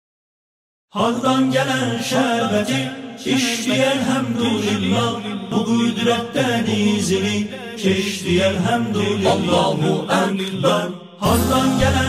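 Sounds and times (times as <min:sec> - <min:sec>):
men singing devotional song: 0:00.9 - 0:12.0
musical backing: 0:11.2 - 0:12.0.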